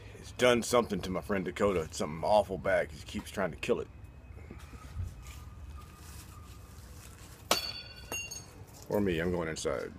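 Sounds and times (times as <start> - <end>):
sharp ringing clink: 7.5 - 8.6.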